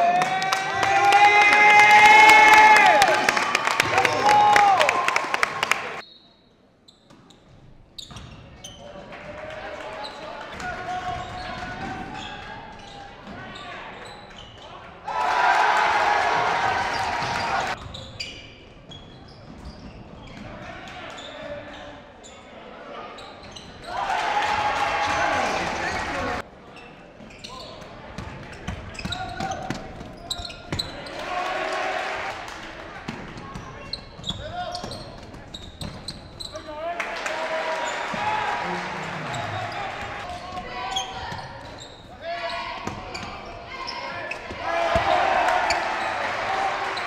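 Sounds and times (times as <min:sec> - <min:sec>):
players and spectators voices: 0:08.2 - 0:47.0.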